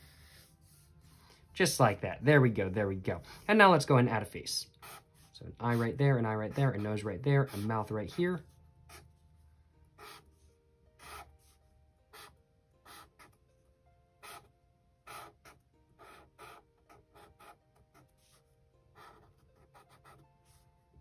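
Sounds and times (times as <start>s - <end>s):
marker scratching on paper: 4.8s - 8.2s, 8.9s - 9.1s, 10.0s - 10.4s, 11.0s - 13.4s, 14.2s - 18.4s, 19.0s - 20.6s.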